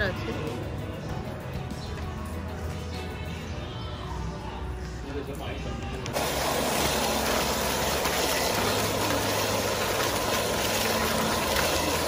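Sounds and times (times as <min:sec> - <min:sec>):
fountain water splashing: 0:06.1 - 0:12.0.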